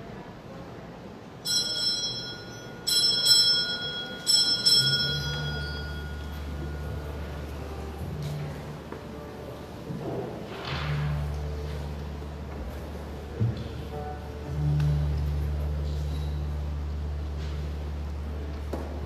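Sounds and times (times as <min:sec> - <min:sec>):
altar bell ringing: 0:01.4 - 0:07.3
low steady hum: 0:01.5 - 0:19.0.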